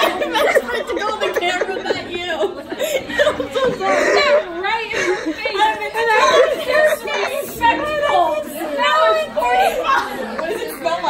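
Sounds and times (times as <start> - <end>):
woman laughing: 0.0 - 6.5
crowd chatter: 0.0 - 11.0.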